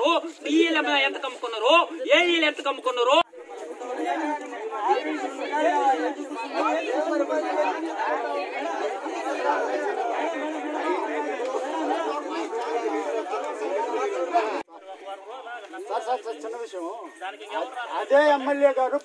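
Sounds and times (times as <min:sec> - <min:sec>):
crowd talking: 0:00.0 - 0:19.0.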